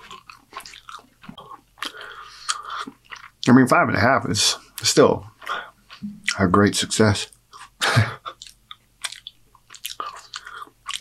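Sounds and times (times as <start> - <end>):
person chewing food: 0.0 - 3.5, 4.6 - 6.6, 7.3 - 11.0.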